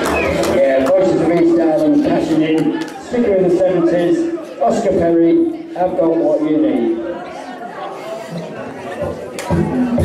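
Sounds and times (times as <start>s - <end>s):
people chattering in echoing hall: 0.0s - 10.0s.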